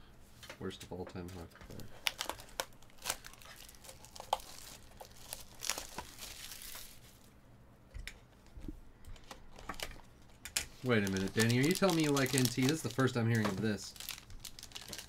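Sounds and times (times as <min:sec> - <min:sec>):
plastic wrap crinkling: 0:01.7 - 0:07.3, 0:10.7 - 0:15.0.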